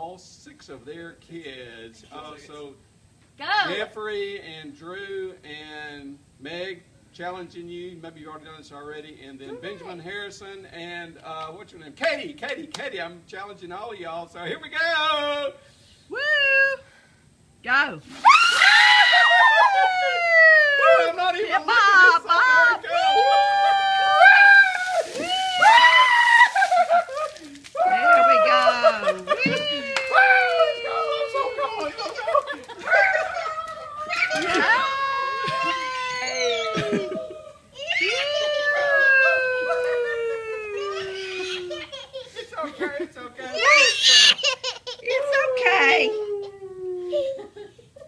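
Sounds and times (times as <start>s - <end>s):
water splashing down: 18.0s - 19.5s, 24.0s - 27.8s
people shrieking and yelling: 18.2s - 41.9s, 43.5s - 44.4s, 45.1s - 46.6s
person crying out sliding down: 22.9s - 26.9s, 32.9s - 41.9s, 43.6s - 44.3s
person laughing: 26.4s - 27.6s, 36.6s - 37.5s, 38.8s - 42.5s.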